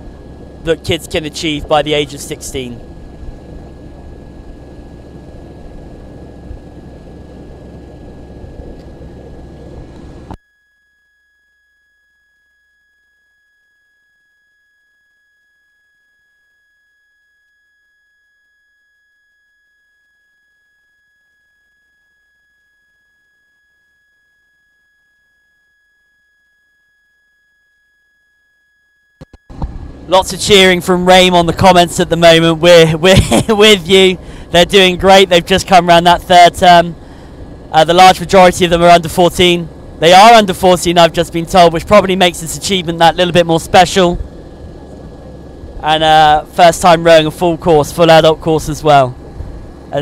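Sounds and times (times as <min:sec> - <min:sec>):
wind rumbling on microphone: 0:00.0 - 0:10.4, 0:29.5 - 0:32.0, 0:41.3 - 0:46.6, 0:48.6 - 0:50.0.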